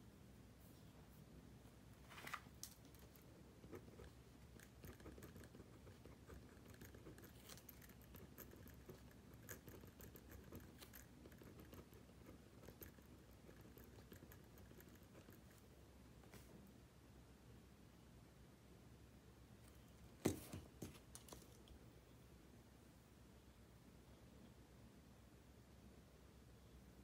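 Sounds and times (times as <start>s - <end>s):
pencil scratching on paper: 3.4s - 15.6s.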